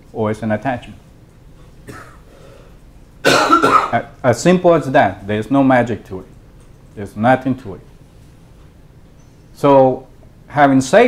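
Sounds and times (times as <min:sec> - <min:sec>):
person coughing loudly: 0:01.9 - 0:02.3, 0:03.2 - 0:04.1.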